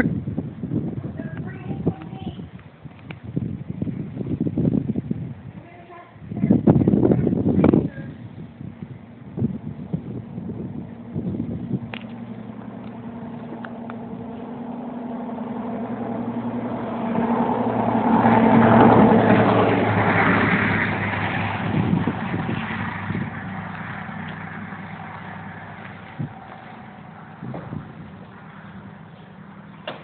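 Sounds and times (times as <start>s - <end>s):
vehicle engine hum: 0.0s - 30.0s.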